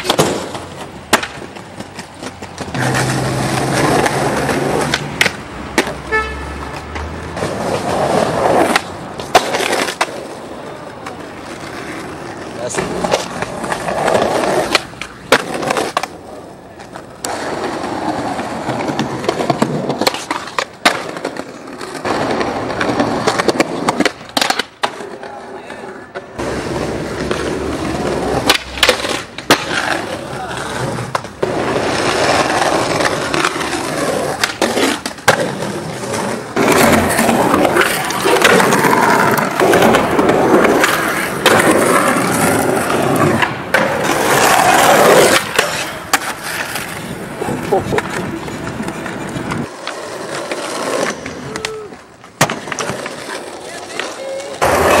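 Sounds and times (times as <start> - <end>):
skateboard cracks and clatter: 0.0 - 55.0
skateboard wheels rolling on concrete: 0.0 - 55.0.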